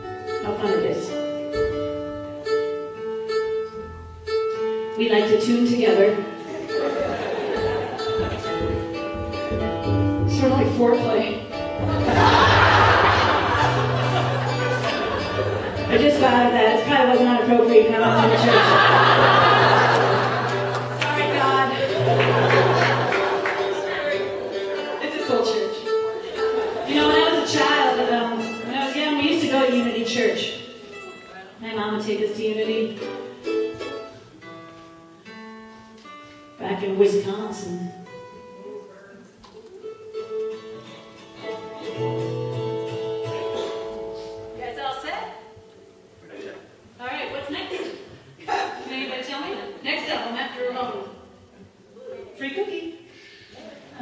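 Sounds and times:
acoustic guitar strings plucked: 0.0s - 31.8s, 32.8s - 38.6s, 39.5s - 46.2s.

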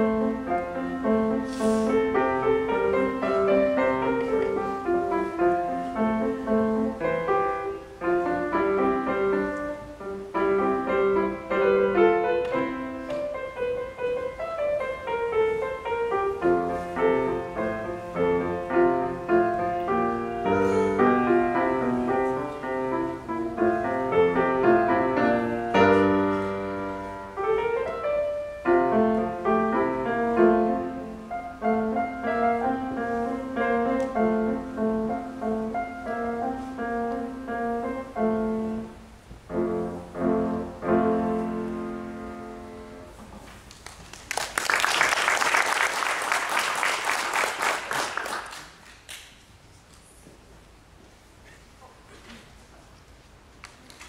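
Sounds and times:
solo grand piano piece: 0.0s - 43.7s
audience applause: 43.7s - 49.3s.

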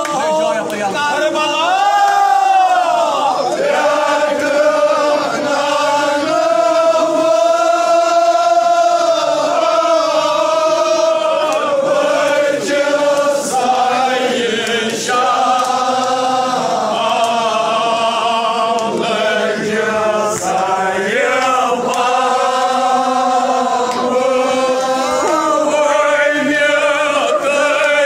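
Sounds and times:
crowd chanting in unison: 0.0s - 28.0s.

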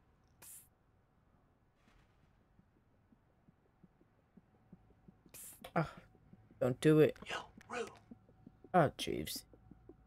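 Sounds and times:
faint low thumps: 2.2s - 10.0s.

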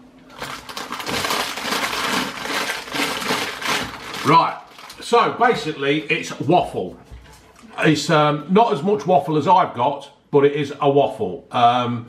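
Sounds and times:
wrapper crinkling: 0.3s - 5.1s.

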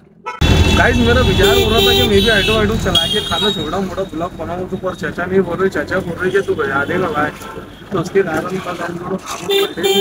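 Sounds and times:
man talking: 0.6s - 10.0s.

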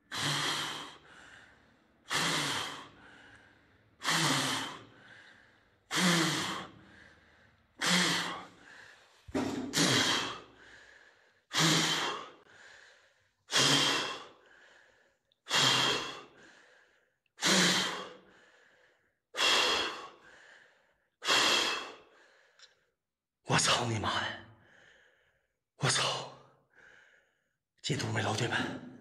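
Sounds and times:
man breathing hard: 0.0s - 23.0s, 24.5s - 25.6s, 26.5s - 27.6s.

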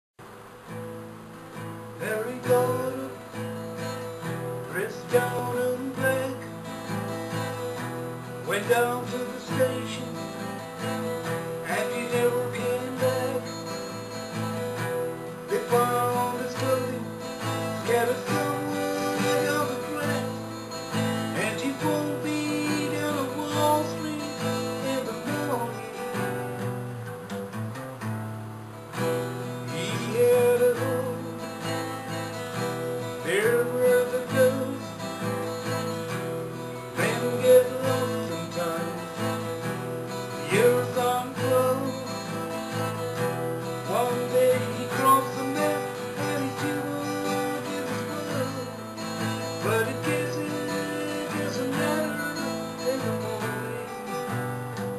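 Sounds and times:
acoustic guitar strumming: 0.2s - 54.9s.

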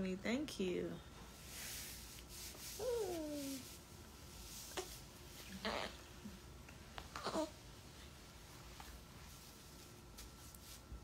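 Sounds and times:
baby whimpering: 2.8s - 3.7s, 5.6s - 6.0s, 7.2s - 7.6s.

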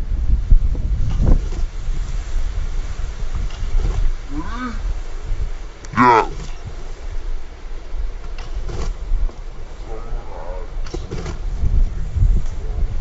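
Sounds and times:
wind buffeting microphone: 0.0s - 13.0s
faint voices: 5.9s - 7.1s.

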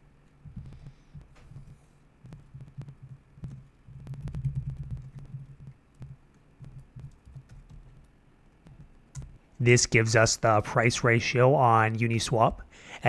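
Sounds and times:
typing on computer keyboard: 0.6s - 9.4s.

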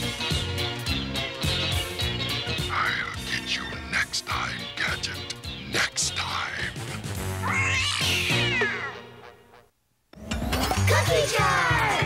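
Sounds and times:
theme music: 0.0s - 12.0s
cartoon cat meowing: 7.4s - 9.2s.

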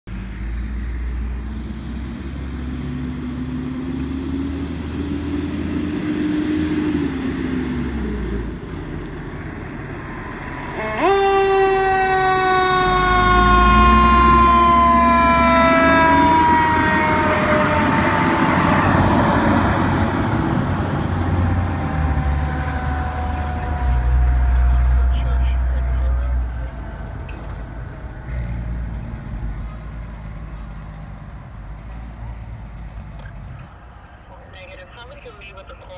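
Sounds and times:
truck engine accelerating: 0.1s - 35.9s
siren blast falling in pitch: 10.4s - 20.3s, 21.1s - 26.6s.

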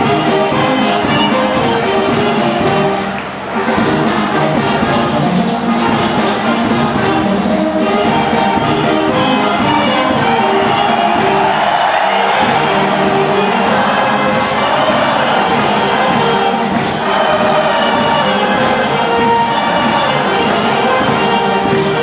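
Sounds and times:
brass band playing dance tune: 0.0s - 22.0s
large crowd cheering: 0.0s - 22.0s.

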